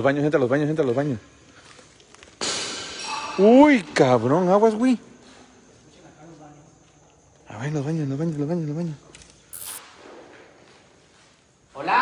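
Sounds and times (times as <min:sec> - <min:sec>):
sharp burst of hiss: 0:09.5 - 0:09.8.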